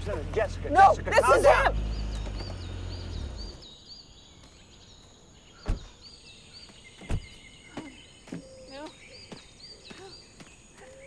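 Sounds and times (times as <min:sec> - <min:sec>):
bird chirping: 0:00.0 - 0:11.0.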